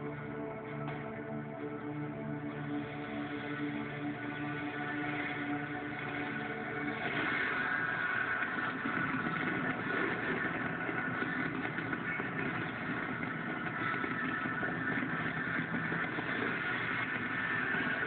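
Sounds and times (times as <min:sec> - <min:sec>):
fireworks on television: 0:00.0 - 0:18.0
crowd noise: 0:03.8 - 0:18.0.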